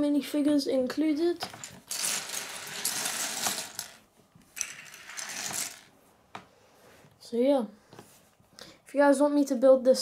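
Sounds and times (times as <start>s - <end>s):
plastic bricks clattering on wooden table: 1.4s - 5.9s.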